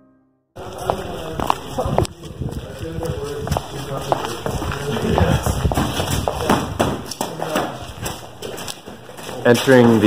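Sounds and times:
footsteps on pavement: 0:00.6 - 0:10.0.

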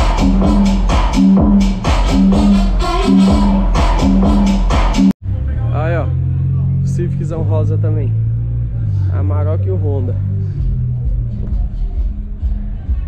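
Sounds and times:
electronic dance music: 0:00.0 - 0:05.2.

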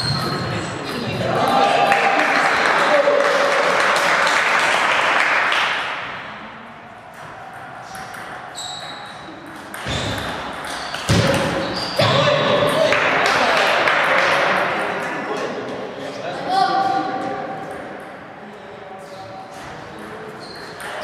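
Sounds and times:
voices in a hall: 0:00.0 - 0:21.0
audience applause: 0:01.6 - 0:05.8.

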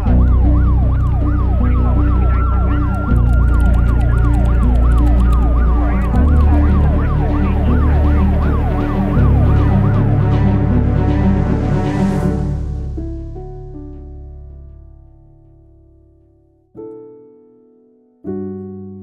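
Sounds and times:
siren yelping: 0:00.0 - 0:12.2
dark synth music with deep bass: 0:00.0 - 0:16.0.

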